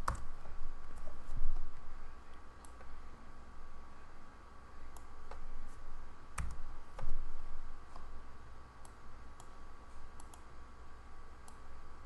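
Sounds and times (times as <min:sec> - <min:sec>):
faint steady hum: 0:00.0 - 0:12.0
computer mouse clicks: 0:06.4 - 0:07.2, 0:08.8 - 0:10.5, 0:11.4 - 0:11.7.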